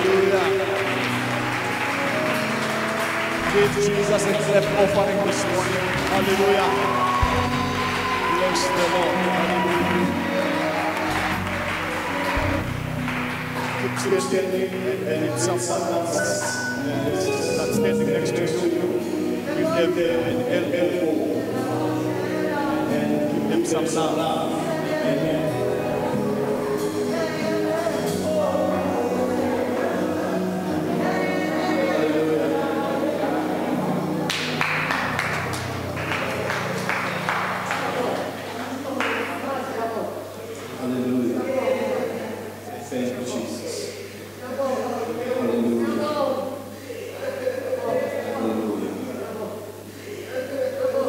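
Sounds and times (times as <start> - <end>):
hand claps: 0.0 - 14.8, 34.2 - 38.4, 39.0 - 39.5
sustained keyboard chord: 0.0 - 31.6
soft live band music: 0.0 - 38.4.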